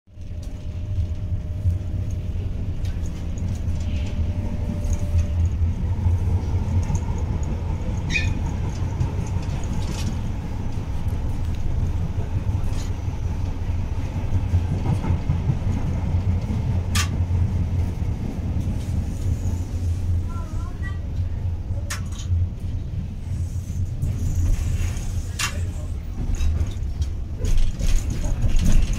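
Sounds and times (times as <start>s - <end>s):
train motors and wheels rumbling: 0.1s - 28.9s.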